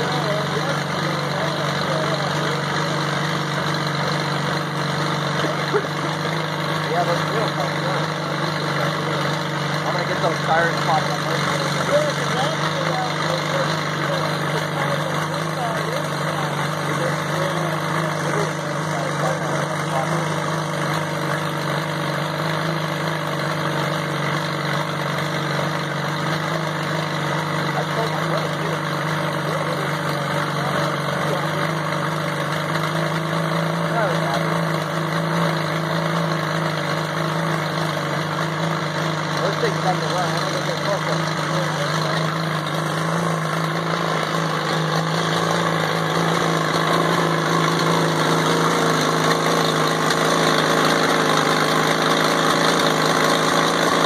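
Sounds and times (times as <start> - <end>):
bulldozer diesel engine idling: 0.0 - 54.0.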